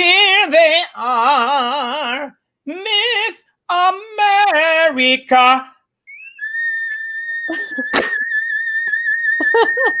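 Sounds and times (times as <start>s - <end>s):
laughter: 7.5s - 10.0s.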